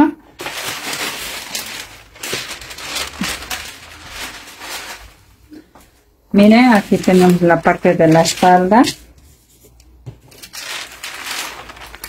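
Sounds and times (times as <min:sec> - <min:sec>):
paper rustling and crinkling: 0:00.3 - 0:05.7, 0:06.4 - 0:12.0.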